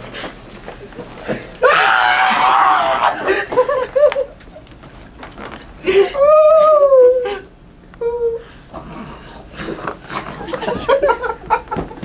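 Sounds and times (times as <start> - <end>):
man screaming high-pitched: 1.6 - 3.3.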